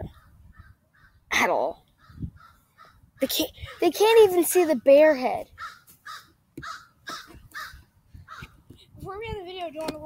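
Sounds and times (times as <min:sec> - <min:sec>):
crows cawing: 0:00.0 - 0:01.2, 0:01.9 - 0:03.8, 0:05.5 - 0:08.6.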